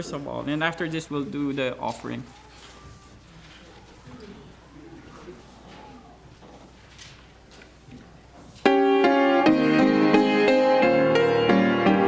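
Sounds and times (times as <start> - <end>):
low electrical hum: 0.0 - 8.7
low murmuring voices: 2.0 - 8.6.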